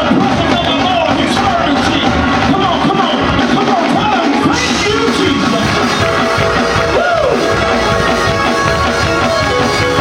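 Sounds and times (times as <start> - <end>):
gospel church band with drums: 0.0 - 10.0.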